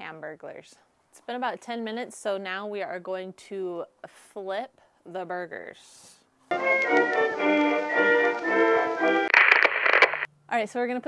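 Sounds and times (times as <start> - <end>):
background music held chords: 6.5 - 9.3.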